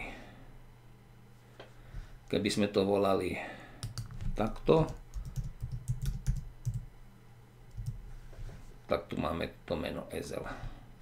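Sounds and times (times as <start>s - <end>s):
typing on computer keyboard: 3.8s - 6.8s, 7.7s - 8.0s.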